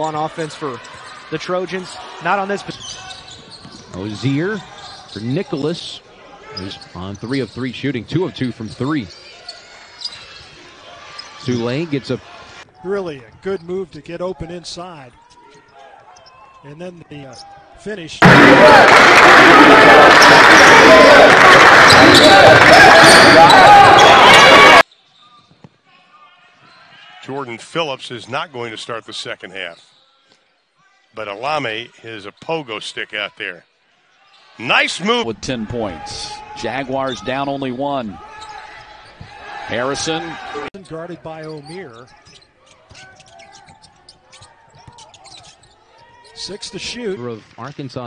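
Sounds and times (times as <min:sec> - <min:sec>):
sneakers squeaking: 0:00.0 - 0:05.6, 0:06.4 - 0:07.8, 0:08.4 - 0:14.0, 0:15.1 - 0:16.6, 0:21.6 - 0:25.8, 0:38.2 - 0:46.6.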